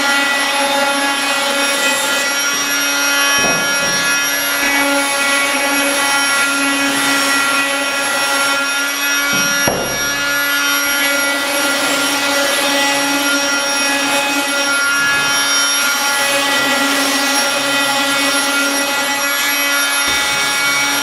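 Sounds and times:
oscillating tool sanding: 0.1 - 21.0.

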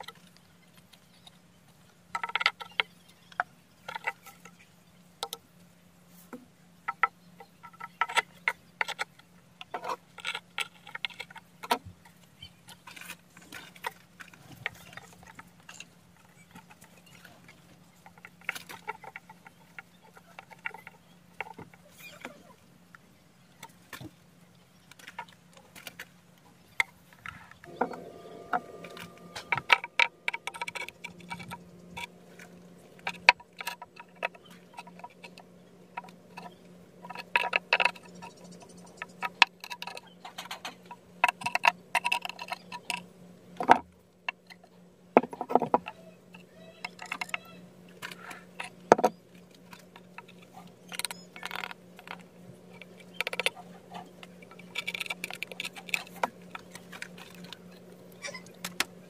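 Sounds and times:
faint low hum: 0.0 - 59.0.

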